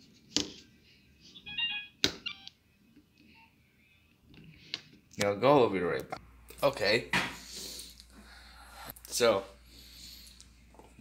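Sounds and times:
phone electronic beeps: 0:01.4 - 0:02.5.

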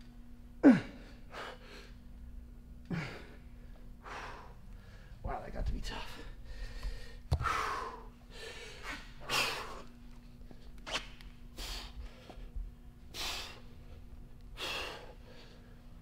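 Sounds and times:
man breathing hard: 0:02.9 - 0:05.2, 0:06.0 - 0:09.9, 0:11.5 - 0:16.0.

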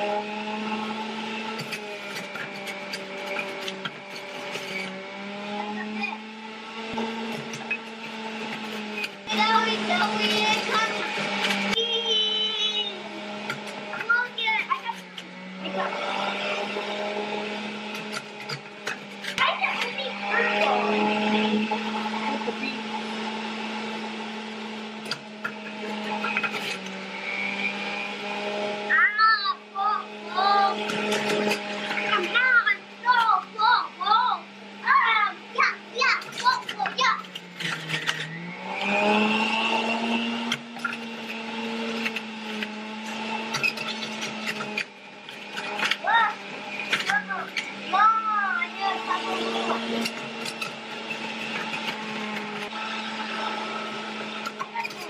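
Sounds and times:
juicer motor humming: 0:00.0 - 0:55.0.

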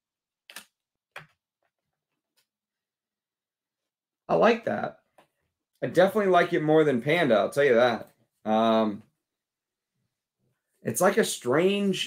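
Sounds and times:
man speaking: 0:04.3 - 0:05.1, 0:05.8 - 0:09.1, 0:10.8 - 0:12.0.

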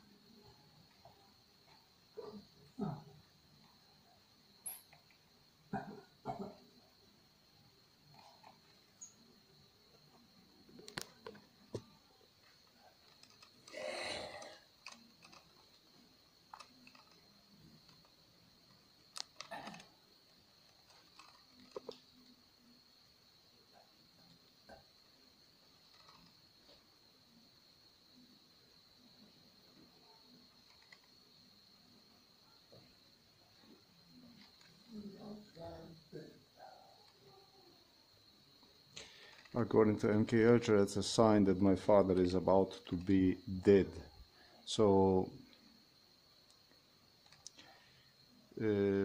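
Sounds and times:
faint high-pitched whine: 0:00.0 - 0:49.0.

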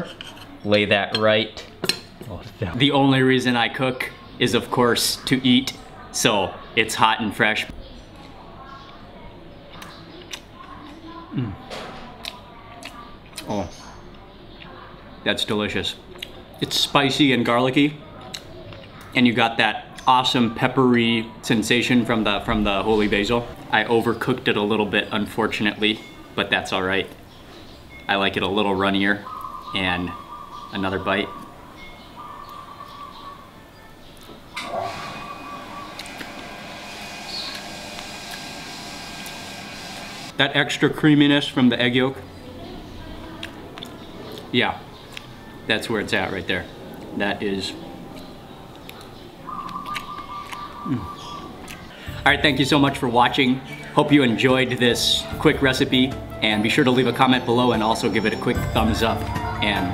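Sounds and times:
man chewing food: 0:09.7 - 0:11.6, 0:35.4 - 0:38.6, 0:43.4 - 0:45.4, 0:48.1 - 0:52.2.

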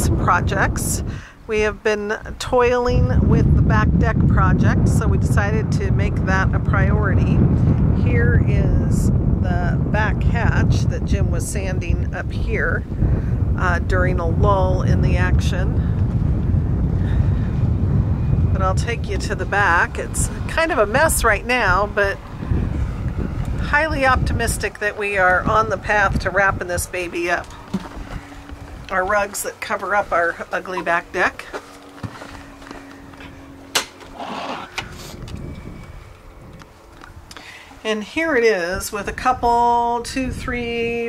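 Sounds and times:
faint steady hum: 0:00.0 - 0:41.0
wind buffeting microphone: 0:00.0 - 0:41.0
rushing noise: 0:15.7 - 0:24.6
footsteps on boat: 0:27.5 - 0:37.0.

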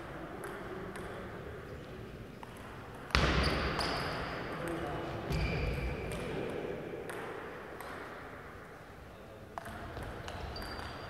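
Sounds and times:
table tennis ball bouncing: 0:00.3 - 0:01.4, 0:07.0 - 0:08.4, 0:09.6 - 0:11.0.

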